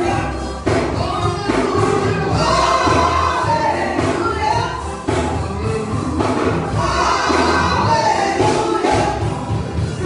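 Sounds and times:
instrumental accompaniment with beat: 0.0s - 10.0s
woman and man singing gospel: 0.0s - 10.0s.

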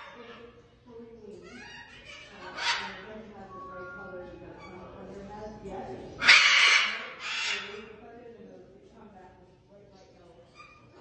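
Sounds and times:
parrot harsh raspy squawk: 0.0s - 0.5s, 1.4s - 3.1s, 6.2s - 7.9s.

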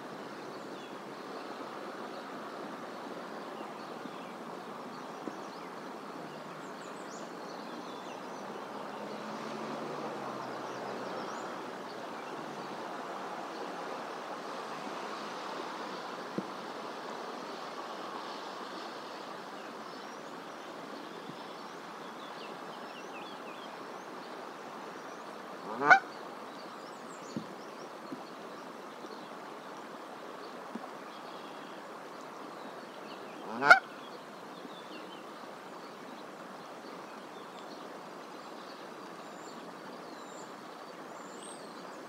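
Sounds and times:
outdoor background hiss: 0.0s - 42.0s
goose honk: 25.7s - 26.1s, 33.5s - 33.9s.

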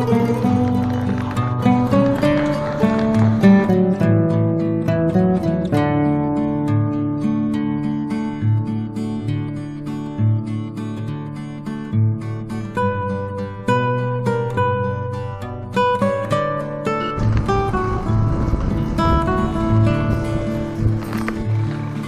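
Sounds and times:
plucked acoustic guitar: 0.0s - 22.0s
rough noisy background layer: 16.8s - 22.0s.

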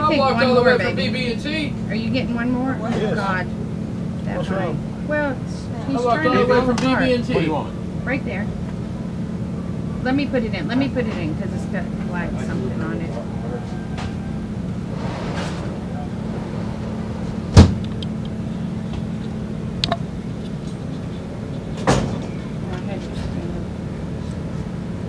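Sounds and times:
low mechanical hum: 0.0s - 25.0s.

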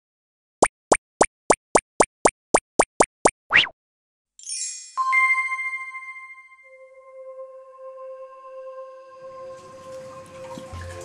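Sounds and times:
pop sliding upward in pitch: 0.6s - 3.7s
cartoon pops: 0.6s - 3.8s.

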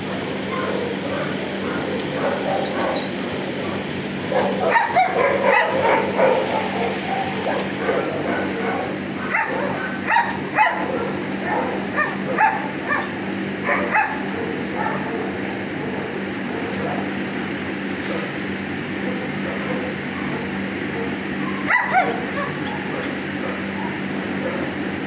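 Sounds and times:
dogs barking and yipping: 0.0s - 17.2s, 19.0s - 24.9s
steady low hum: 0.0s - 25.0s.

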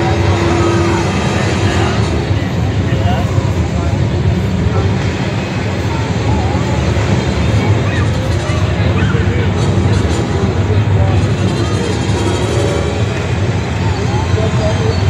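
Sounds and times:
crowd voices: 0.0s - 15.0s
machine engine low rumble: 0.0s - 15.0s.

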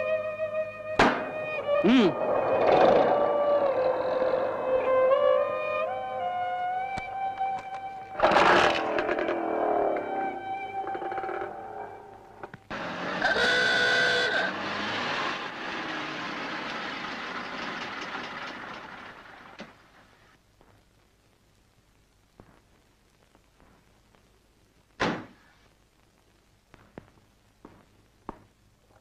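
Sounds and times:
car engine and tyres: 0.0s - 20.4s
vintage car horn: 13.2s - 14.6s.

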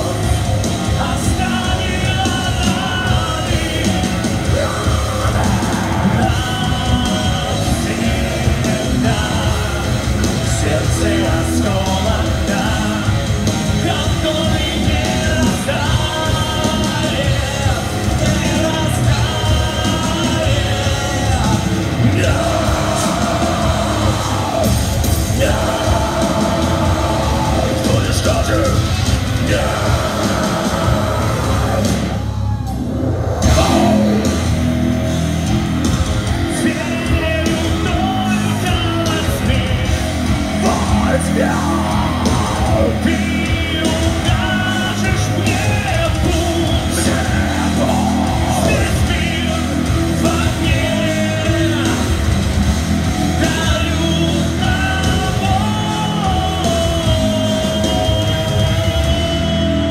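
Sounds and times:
lead vocal singing: 0.0s - 59.9s
live heavy rock band: 0.0s - 59.9s.

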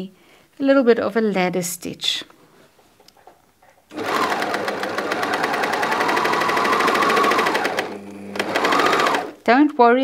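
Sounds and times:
overlocker stitching chatter: 3.9s - 9.4s.

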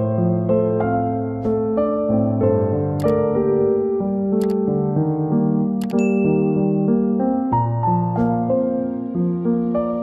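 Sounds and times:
soft piano music: 0.0s - 10.0s
quick double click: 3.0s - 3.2s, 5.8s - 6.2s
notification bell ding: 5.8s - 6.6s.

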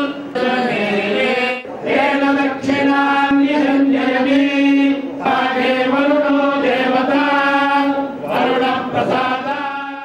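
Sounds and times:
priests chanting in unison: 0.0s - 10.0s.

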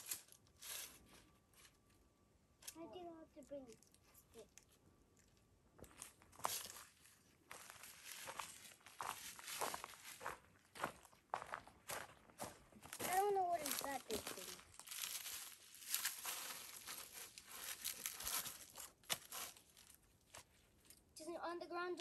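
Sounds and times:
dry leaves crunching: 6.0s - 20.6s
child's wordless vocal sound: 13.0s - 14.6s.

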